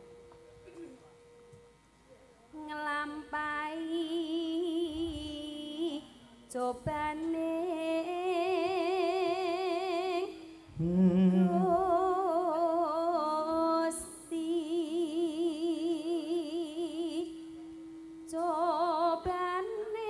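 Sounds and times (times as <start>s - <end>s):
woman singing with vibrato: 2.6s - 20.0s.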